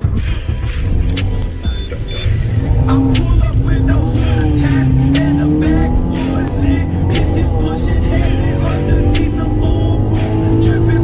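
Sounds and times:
background music: 0.0s - 11.0s
car engine running: 0.0s - 11.0s.

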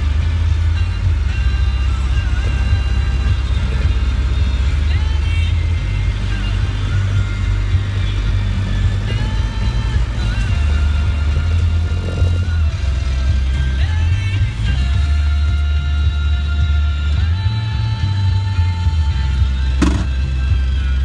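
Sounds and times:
car engine running at low speed: 0.0s - 21.0s.

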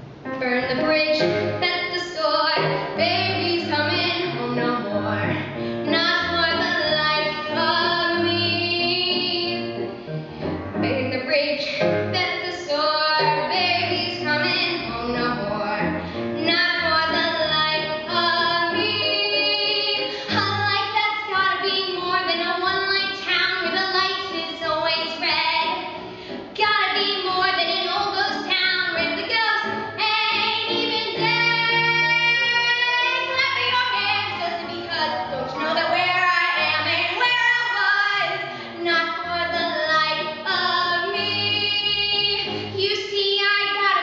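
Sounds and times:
girl singing into microphone: 0.4s - 9.7s, 10.8s - 25.9s, 26.5s - 44.0s.

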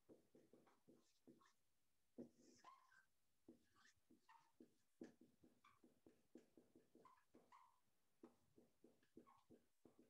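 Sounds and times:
writing strokes on a board: 0.0s - 10.0s.

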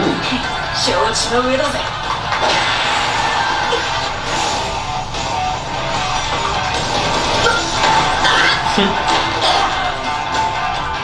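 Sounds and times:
soundtrack music with guitar: 0.0s - 11.0s.

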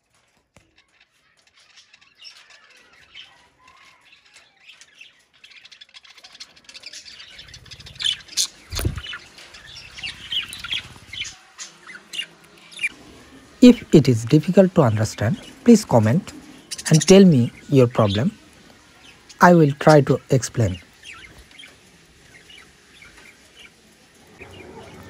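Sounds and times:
budgerigars chirping: 4.3s - 12.9s, 13.6s - 18.4s.

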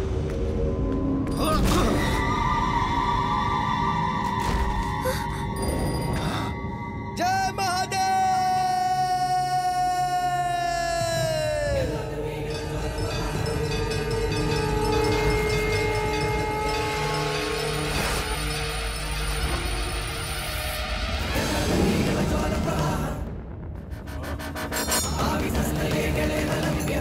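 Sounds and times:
dramatic film music: 0.0s - 27.0s.

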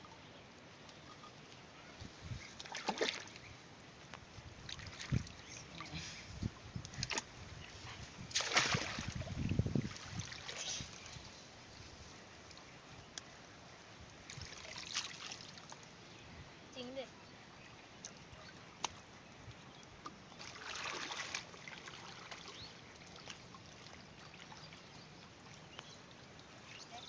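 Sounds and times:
pond water splashing: 2.4s - 15.9s, 17.9s - 27.0s.

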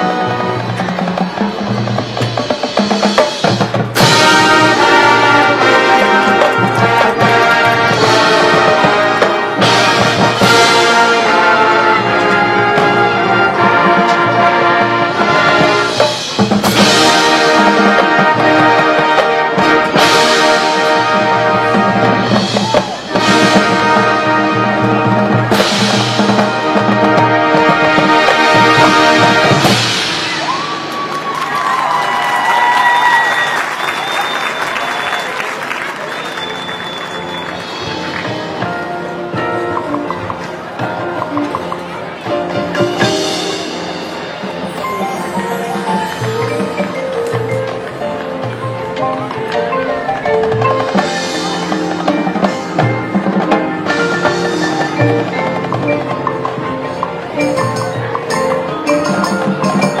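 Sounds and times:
marching band playing: 0.0s - 60.0s
crowd applauding and cheering: 4.0s - 9.6s, 22.2s - 23.2s, 30.1s - 38.7s, 44.5s - 51.8s
whistles: 32.8s - 38.0s
marimba and glockenspiel: 36.3s - 60.0s.

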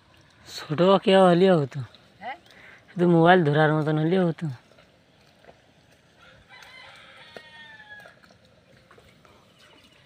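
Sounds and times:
rooster crowing faintly: 6.2s - 8.3s.

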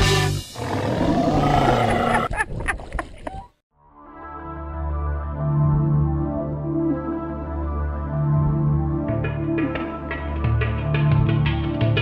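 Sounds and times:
lion-style roar: 0.0s - 2.2s.

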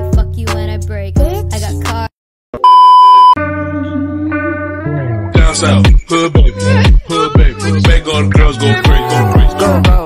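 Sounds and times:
high-pitched test tone beep: 2.6s - 3.4s
music with held note and bass: 3.4s - 10.0s.

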